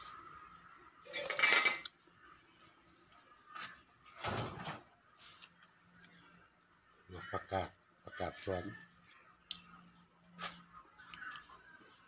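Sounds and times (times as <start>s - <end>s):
ceramic plates knocking and scraping: 1.1s - 1.8s.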